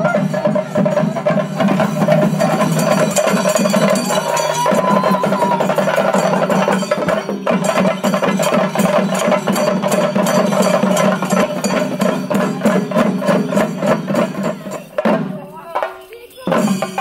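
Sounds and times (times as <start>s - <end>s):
drums beaten fast with sticks: 0.0s - 17.0s.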